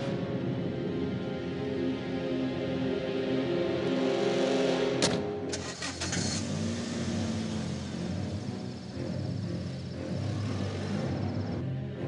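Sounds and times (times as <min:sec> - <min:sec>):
road noise: 0:00.0 - 0:12.0
tense film score: 0:00.0 - 0:12.0
car engine: 0:05.0 - 0:12.0.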